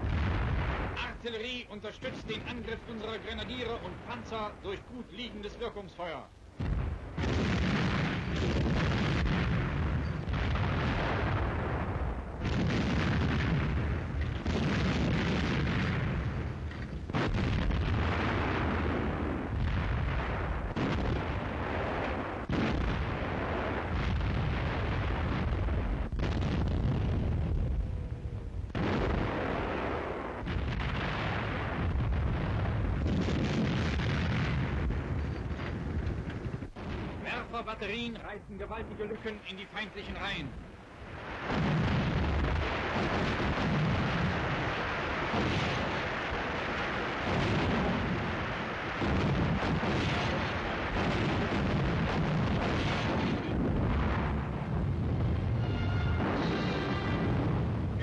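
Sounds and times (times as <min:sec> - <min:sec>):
artillery booms: 0:00.0 - 0:58.0.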